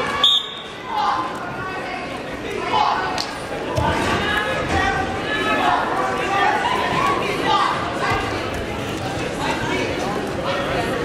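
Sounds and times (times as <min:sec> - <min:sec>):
referee whistle blast: 0:00.2 - 0:00.8.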